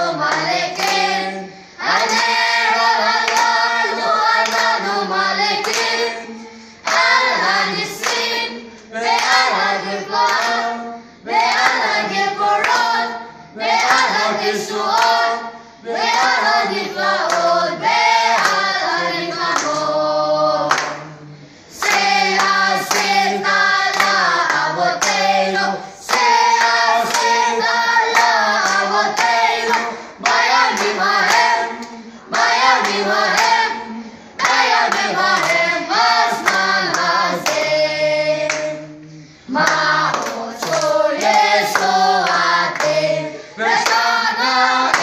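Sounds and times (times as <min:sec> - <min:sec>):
group singing: 0:00.0 - 0:45.0
hands clapping: 0:00.3 - 0:01.1, 0:01.9 - 0:04.8, 0:05.5 - 0:06.1, 0:06.8 - 0:09.6, 0:10.2 - 0:10.6, 0:11.4 - 0:11.9, 0:12.5 - 0:13.0, 0:13.8 - 0:14.2, 0:14.9 - 0:15.2, 0:17.2 - 0:17.5, 0:18.4 - 0:18.7, 0:19.5 - 0:19.8, 0:20.6 - 0:21.1, 0:21.8 - 0:25.3, 0:26.0 - 0:33.7, 0:34.4 - 0:37.8, 0:38.4 - 0:38.8, 0:39.5 - 0:43.1, 0:43.7 - 0:45.0.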